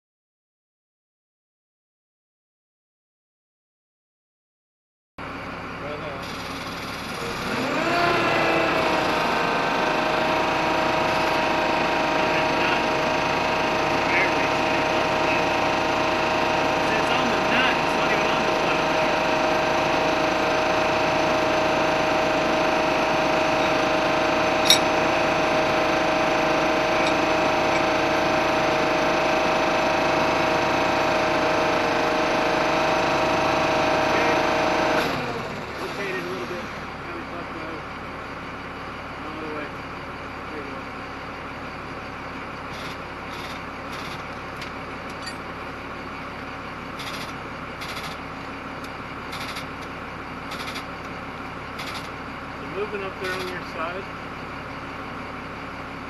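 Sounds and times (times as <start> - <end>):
engine revving with whine: 6.1 - 37.8.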